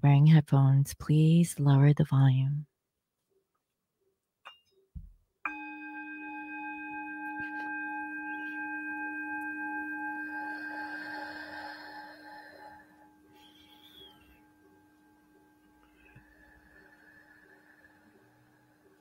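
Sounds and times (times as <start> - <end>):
singing bowl ringing: 5.4 - 19.0.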